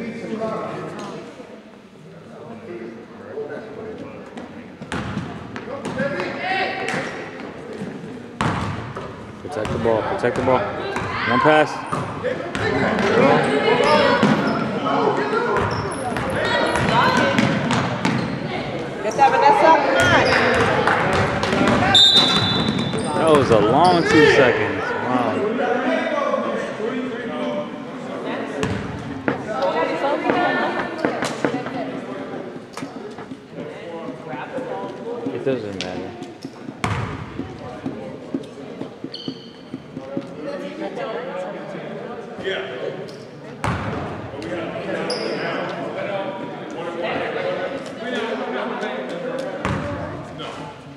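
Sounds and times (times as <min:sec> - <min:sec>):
background chatter: 0:00.0 - 0:50.9
voices of spectators and players: 0:00.0 - 0:50.9
basketball bouncing on hardwood floor: 0:36.8 - 0:37.2.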